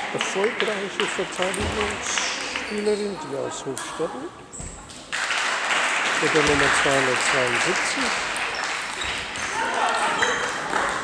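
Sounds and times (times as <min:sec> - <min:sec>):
chatter in sports hall: 0:00.0 - 0:11.0.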